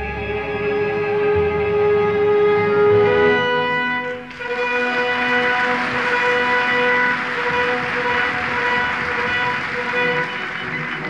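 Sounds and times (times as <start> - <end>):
orchestra accompaniment: 0.0 - 11.0.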